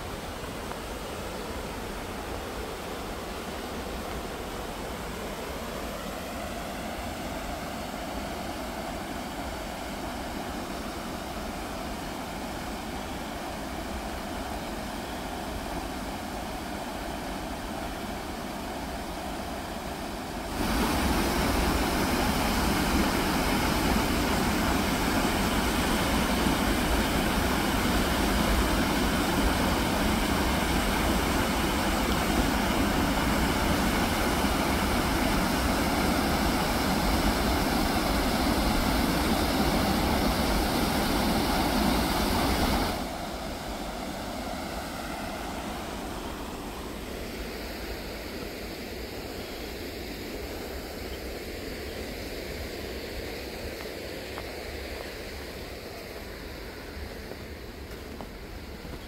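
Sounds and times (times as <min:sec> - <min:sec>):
waterfall rushing: 0:00.0 - 0:59.0.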